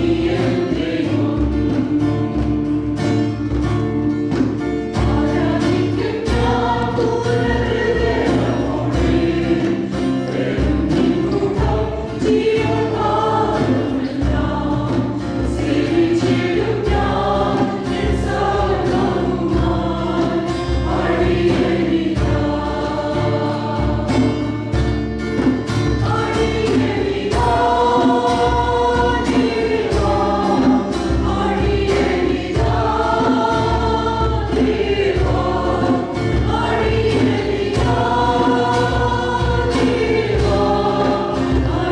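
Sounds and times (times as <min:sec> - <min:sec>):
choir singing worship song: 0:00.0 - 0:41.9
instrumental accompaniment: 0:00.0 - 0:41.9.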